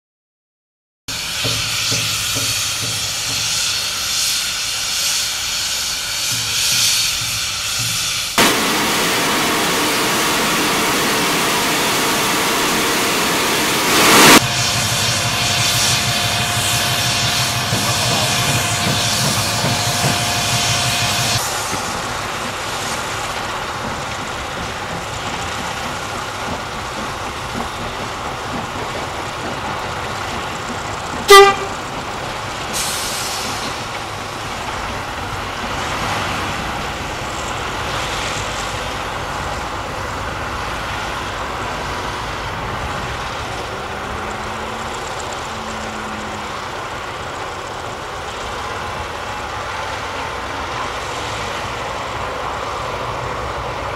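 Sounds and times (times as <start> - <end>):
steam hissing: 1.1 - 53.8
steam locomotive running: 1.1 - 53.9
steam whistle toot: 8.4 - 21.4, 31.3 - 31.8.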